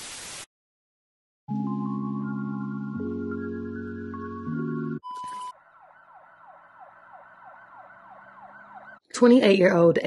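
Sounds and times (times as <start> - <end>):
faint siren sweeping: 3.0 - 9.1.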